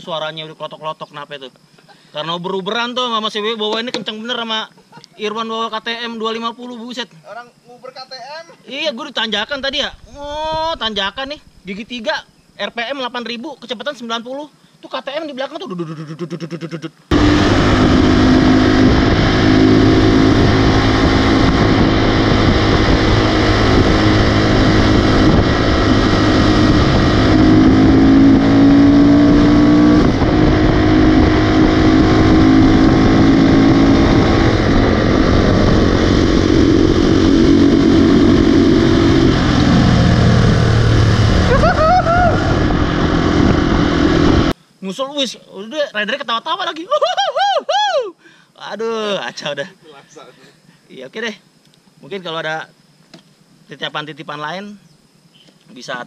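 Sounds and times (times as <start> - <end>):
motorcycle engine at high revs: 17.1 - 44.5
wind rush: 17.1 - 44.6.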